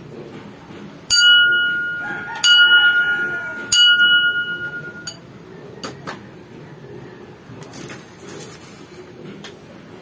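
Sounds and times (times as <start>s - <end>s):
ceramic saucer tapped ringing: 1.1s - 5.2s.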